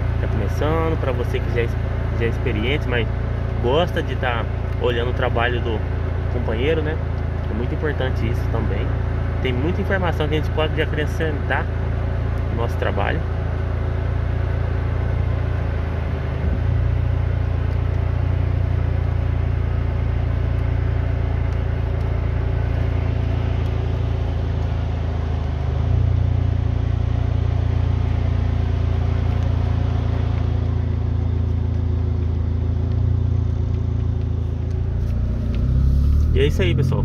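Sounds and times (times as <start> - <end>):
vehicle engine running: 0.0 - 37.0.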